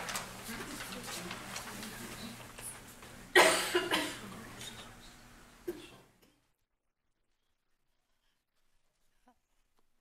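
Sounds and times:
person coughing: 3.3s - 4.3s, 5.6s - 6.1s.

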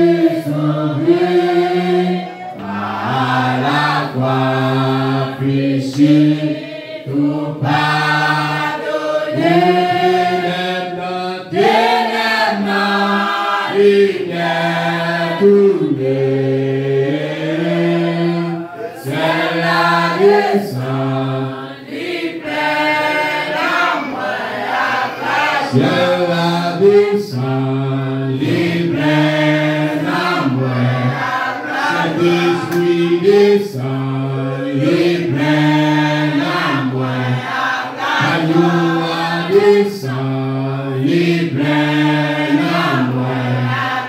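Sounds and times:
congregation singing a hymn: 0.0s - 44.0s
man singing into a microphone: 25.7s - 31.1s, 32.0s - 37.3s, 38.2s - 43.6s.

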